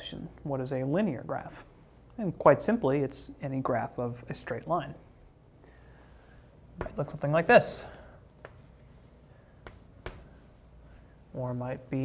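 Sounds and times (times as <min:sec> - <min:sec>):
chalk scratching on blackboard: 0:06.8 - 0:10.6
chalk tapping on blackboard: 0:08.4 - 0:08.8, 0:09.6 - 0:10.5.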